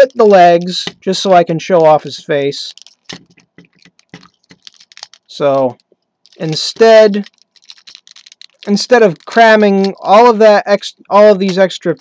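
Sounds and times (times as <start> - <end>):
plastic toy parts clicking: 2.7 - 9.2.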